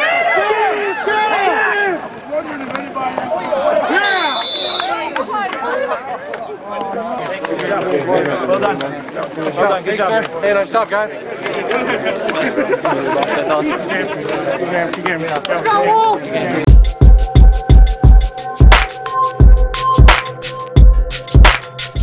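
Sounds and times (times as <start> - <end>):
men shouting: 0.0 - 2.2
mixed chatter: 0.0 - 19.5
referee's whistle: 3.9 - 5.0.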